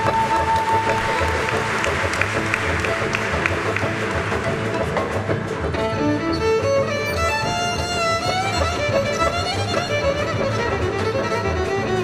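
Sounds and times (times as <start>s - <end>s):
held flute note: 0.0s - 4.7s
audience applauding: 0.0s - 6.6s
folk orchestra playing: 0.0s - 12.0s.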